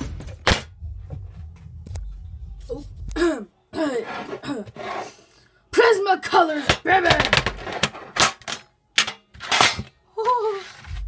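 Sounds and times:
low background music: 0:00.0 - 0:11.0.

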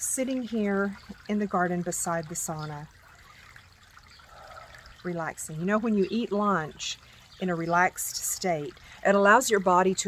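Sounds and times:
fountain water trickling: 0:00.0 - 0:10.0.

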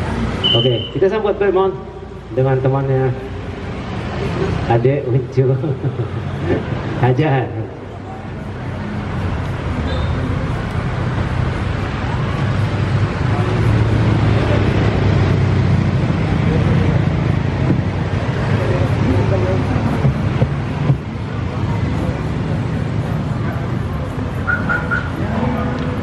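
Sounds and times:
vehicle engine rumbling: 0:00.0 - 0:26.0
faint voices: 0:04.0 - 0:26.0.

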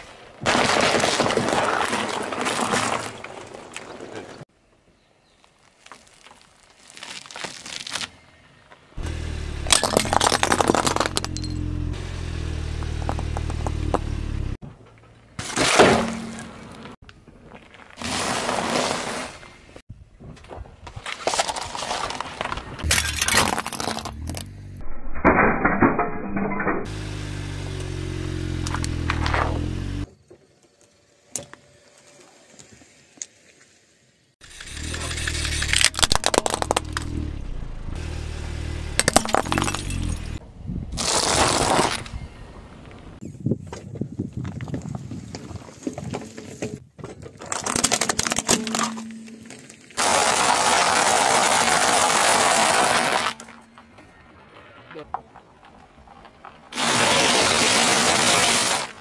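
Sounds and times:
tyre crushing objects: 0:09.0 - 0:11.8, 0:34.9 - 0:37.3.

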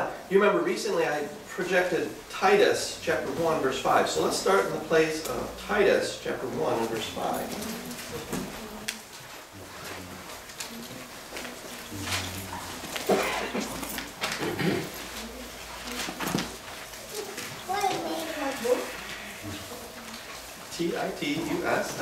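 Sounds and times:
voices murmuring: 0:09.5 - 0:22.0.

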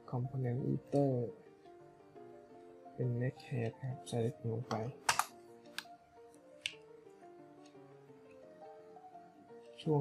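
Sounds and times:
soft background music: 0:00.0 - 0:10.0
keyboard and mouse clicks: 0:04.7 - 0:05.9.

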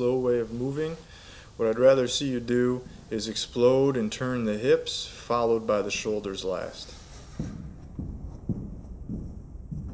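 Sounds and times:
footsteps sprinting on turf: 0:07.3 - 0:09.9.

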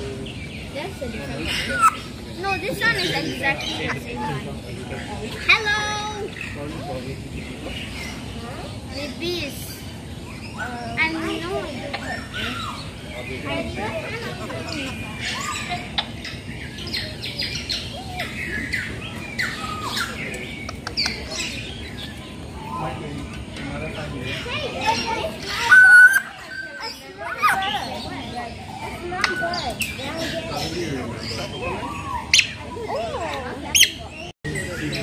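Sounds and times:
birds chirping: 0:00.0 - 0:35.0
soft background voices: 0:00.0 - 0:35.0.

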